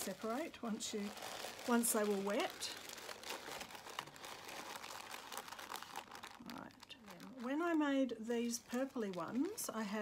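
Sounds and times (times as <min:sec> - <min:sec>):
paper filters crinkling: 0:00.0 - 0:10.0.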